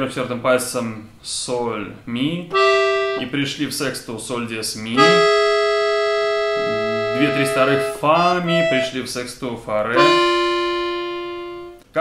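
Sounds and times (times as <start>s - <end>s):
accordion held chord: 2.5s - 3.3s, 5.0s - 9.0s, 10.0s - 11.8s.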